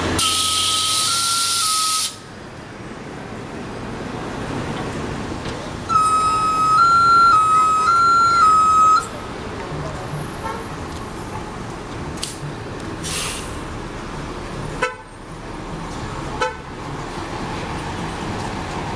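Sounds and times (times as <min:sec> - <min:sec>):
street traffic: 0:00.0 - 0:18.9
bus air brake hiss: 0:00.2 - 0:02.3, 0:13.0 - 0:13.7
two-tone electronic warning chime: 0:05.9 - 0:09.1.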